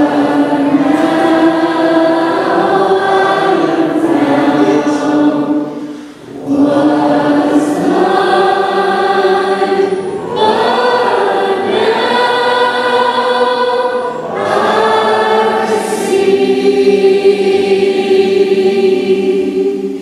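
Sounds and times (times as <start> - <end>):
group of voices singing: 0.0 - 20.0.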